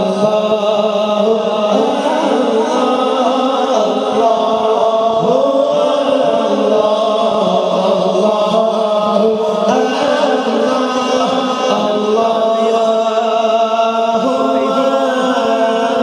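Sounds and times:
man chanting through a microphone: 0.0s - 16.0s.

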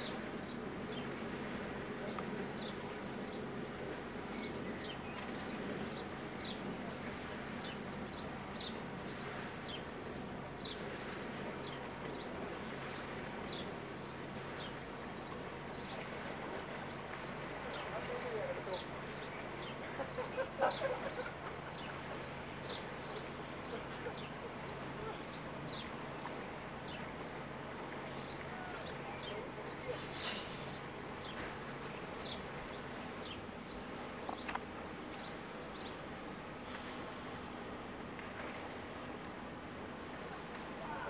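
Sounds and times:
birds chirping: 0.0s - 41.0s
steady low hum: 0.0s - 41.0s.

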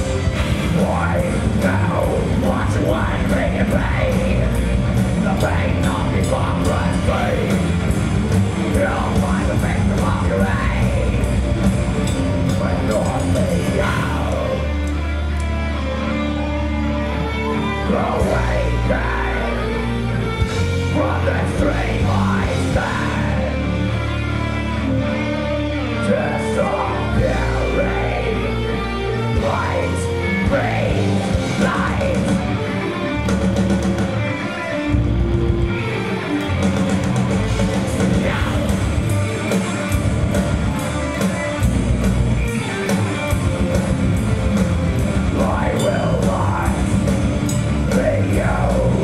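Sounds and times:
steady low bass: 0.0s - 16.0s, 36.7s - 42.6s, 43.3s - 49.0s
drums: 0.0s - 49.0s
electric guitar: 0.0s - 49.0s
keyboard: 0.0s - 49.0s.

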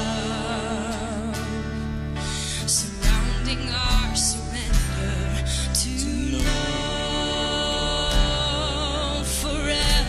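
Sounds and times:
band playing worship song: 0.0s - 10.0s.

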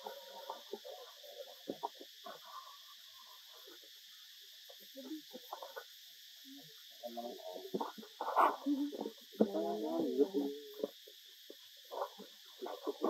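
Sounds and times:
insect buzz: 0.0s - 13.0s.

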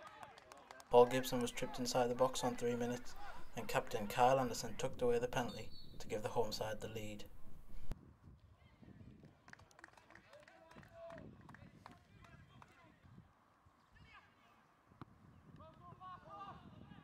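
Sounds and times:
distant players shouting: 0.9s - 7.9s.

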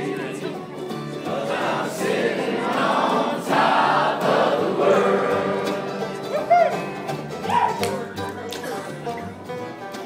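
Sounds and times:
group singing together: 0.0s - 6.4s
acoustic bluegrass band: 0.0s - 10.0s
short yelp: 7.4s - 8.2s.

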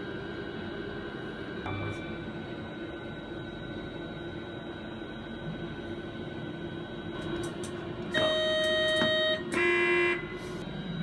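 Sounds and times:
two-tone train horn: 8.1s - 10.5s.

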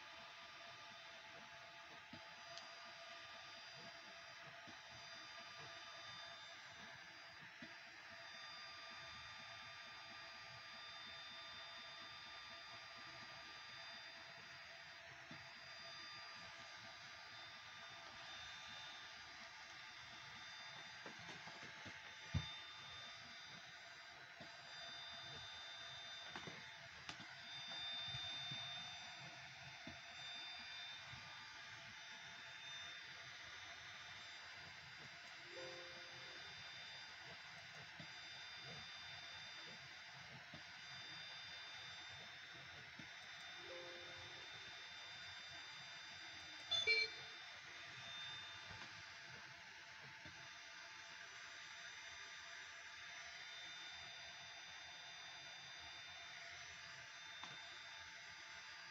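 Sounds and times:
electronic whine of motors: 0.0s - 58.9s.

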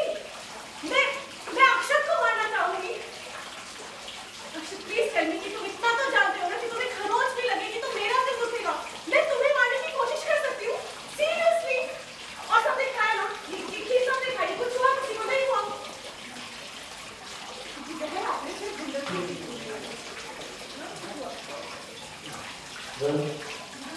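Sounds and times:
woman speaking heatedly: 0.8s - 3.0s, 4.6s - 15.8s.

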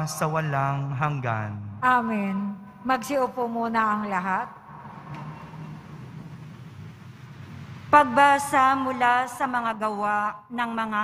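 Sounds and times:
low murmur: 4.6s - 9.2s.

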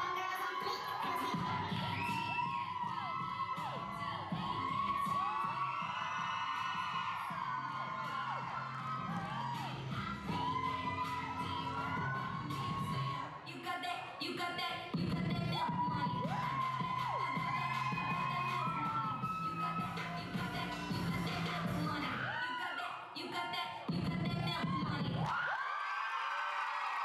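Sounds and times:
audience cheering and whooping: 0.0s - 13.4s, 15.4s - 23.1s, 24.4s - 27.0s
hip-hop music with bass line: 0.0s - 22.6s, 23.2s - 25.3s.

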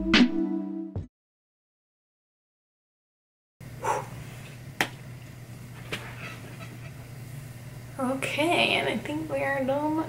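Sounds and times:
steady low hum: 3.6s - 10.0s.

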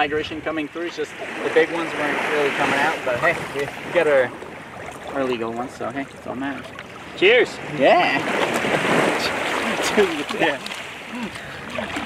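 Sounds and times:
sea water sloshing and splashing: 0.0s - 12.0s.

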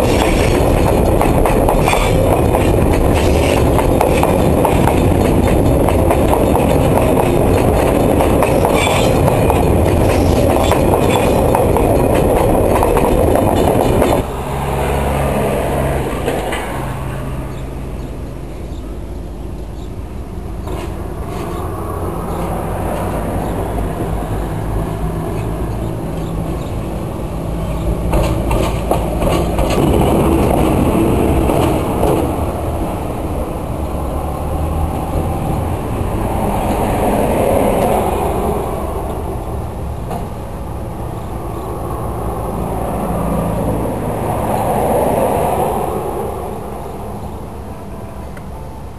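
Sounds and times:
diesel locomotive drone: 0.0s - 48.9s
train wheels rumbling on rails: 0.0s - 48.9s.

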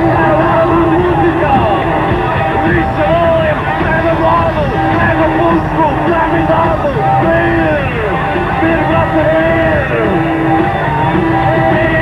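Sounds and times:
gliding lead guitar line: 0.0s - 12.0s
live rock band playing: 0.0s - 12.0s.

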